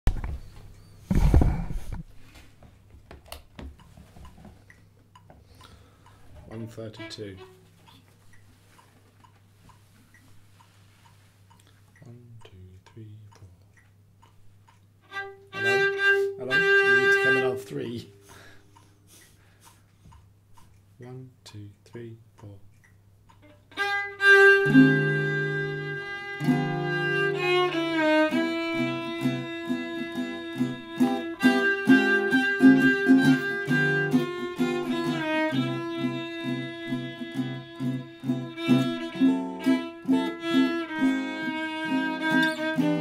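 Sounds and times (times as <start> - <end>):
small clicks and taps: 2.3 - 7.1, 19.2 - 20.9, 21.9 - 23.6
metronome ticking: 3.7 - 43.0
violin note: 6.4 - 7.6, 15.0 - 18.4, 23.4 - 43.0.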